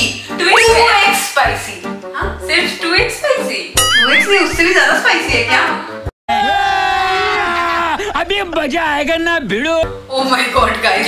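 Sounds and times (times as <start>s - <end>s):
person yelling: 3.8s - 4.9s.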